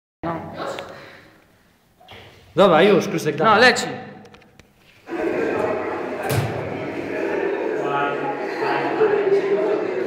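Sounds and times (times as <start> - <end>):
thump: 6.2 - 6.7.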